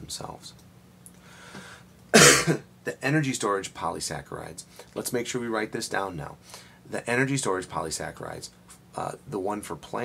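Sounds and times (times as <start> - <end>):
man talking: 0.0 - 0.6, 2.8 - 10.0
man clearing throat: 2.2 - 2.6.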